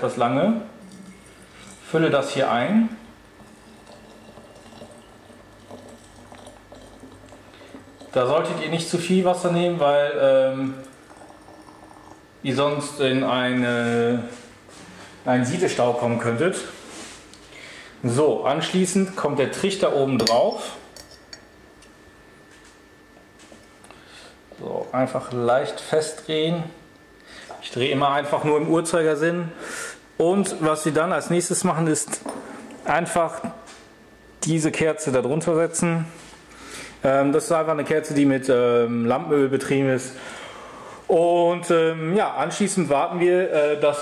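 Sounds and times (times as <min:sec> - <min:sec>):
water pouring into glass: 0:00.8 - 0:01.9, 0:03.4 - 0:08.6, 0:10.8 - 0:12.2.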